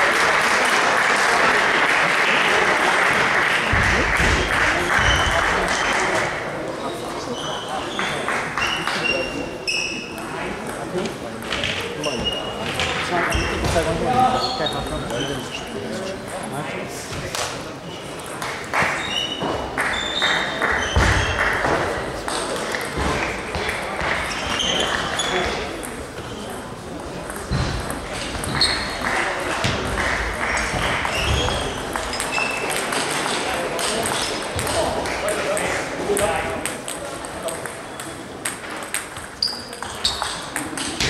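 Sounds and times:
voices echoing in a hall: 0.0s - 41.0s
table tennis balls bouncing: 3.2s - 6.2s, 7.9s - 14.0s, 17.2s - 41.0s.

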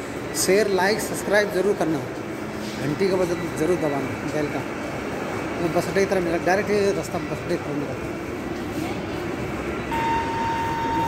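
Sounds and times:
metro train rumble: 0.0s - 11.0s
steady high hum: 0.0s - 11.0s.

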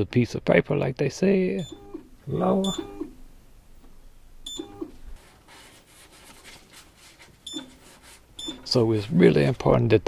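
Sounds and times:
touchscreen beep: 1.6s - 1.8s, 2.6s - 3.0s, 4.5s - 4.8s, 7.5s - 7.7s, 8.4s - 8.7s.

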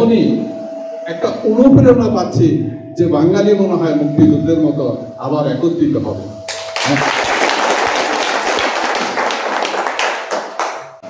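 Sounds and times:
audience applauding: 6.5s - 11.0s.

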